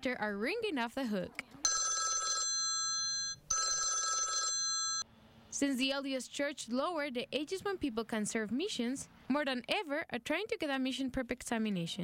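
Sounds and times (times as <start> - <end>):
desk phone ringing: 1.6 - 5.0.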